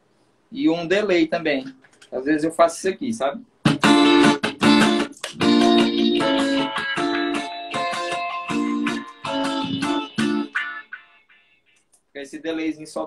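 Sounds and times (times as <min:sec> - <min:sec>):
electric guitar chord strums: 0:03.6 - 0:11.5.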